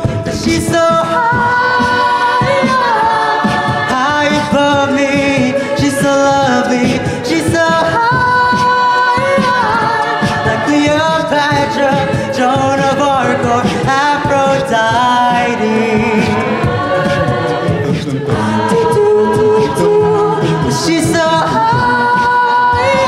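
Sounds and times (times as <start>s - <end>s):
a cappella group singing chords: 0.0s - 23.0s
beatboxed vocal percussion: 0.0s - 23.0s.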